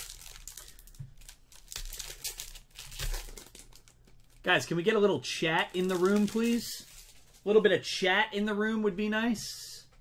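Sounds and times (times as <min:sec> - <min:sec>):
foil wrapper crinkling: 0:00.0 - 0:04.7, 0:05.6 - 0:07.5.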